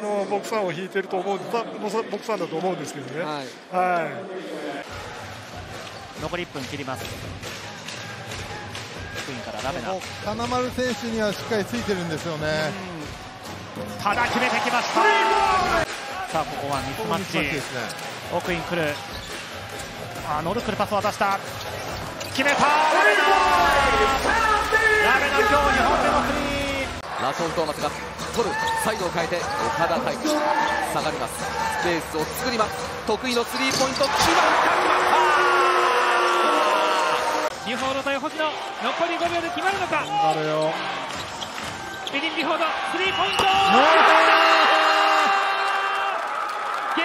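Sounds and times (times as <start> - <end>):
arena voices: 14.0 - 16.3, 22.4 - 27.1
shoes squeaking on floor: 21.4 - 22.6, 33.2 - 34.3, 39.2 - 43.5.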